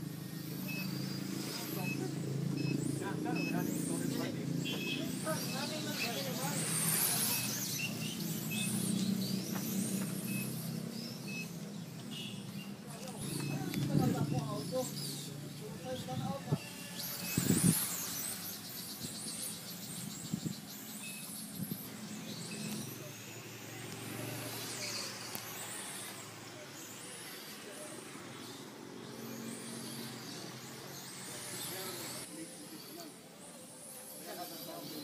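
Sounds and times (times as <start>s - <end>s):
small motors whining: 0.0s - 35.0s.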